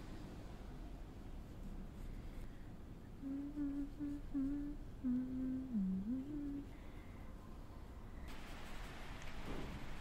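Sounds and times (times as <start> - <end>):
woman humming: 3.1 - 6.8.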